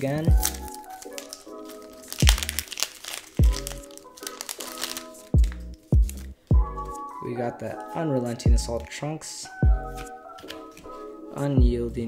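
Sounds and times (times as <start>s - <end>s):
foil pack crinkling: 0.0s - 6.2s
background music with drum beat: 5.4s - 6.8s, 8.5s - 8.8s, 9.6s - 10.1s, 11.6s - 11.9s
cards sliding out: 10.0s - 11.0s.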